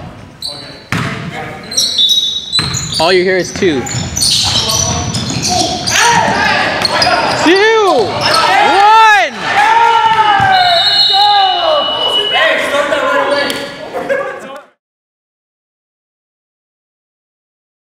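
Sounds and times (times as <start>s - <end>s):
ball bounces: 0.9s - 1.3s, 2.6s - 2.8s
men shouting long calls: 7.3s - 12.3s.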